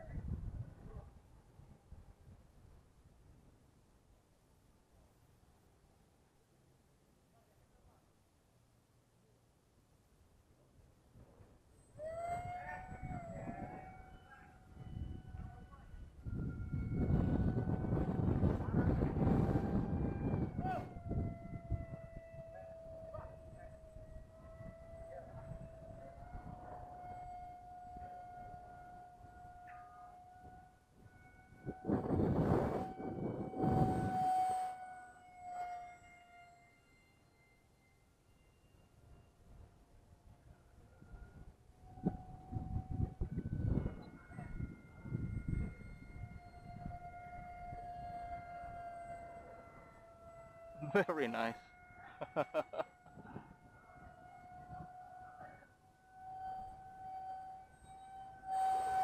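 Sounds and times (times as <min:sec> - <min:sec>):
wind buffeting microphone: 0:00.0 - 0:03.4, 0:12.0 - 0:34.6, 0:40.5 - 0:50.8, 0:53.0 - 0:55.6
electric motor high whine: 0:11.8 - 0:59.0.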